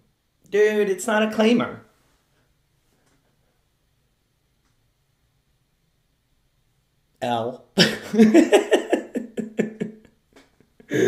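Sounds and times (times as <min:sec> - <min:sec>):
man laughing: 0:07.8 - 0:10.2.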